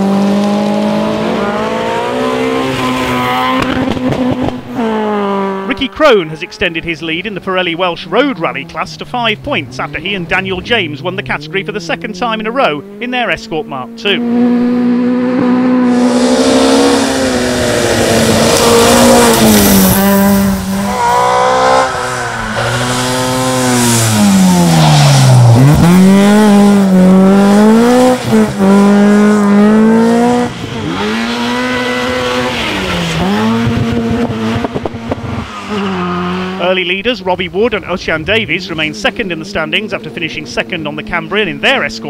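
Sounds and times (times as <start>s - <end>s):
rally car engines revving: 0.0s - 42.0s.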